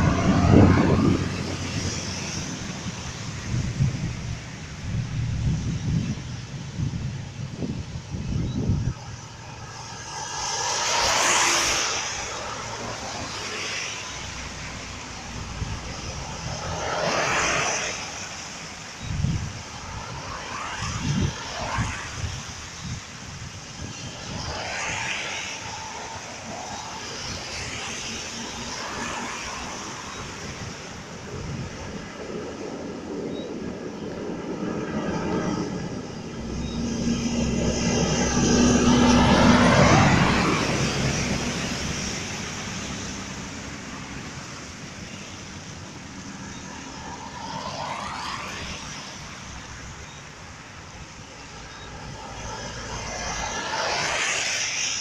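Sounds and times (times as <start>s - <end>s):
engine drone: 0.0s - 55.0s
tyres hissing on wet road: 0.0s - 55.0s
vehicle road noise: 0.0s - 55.0s.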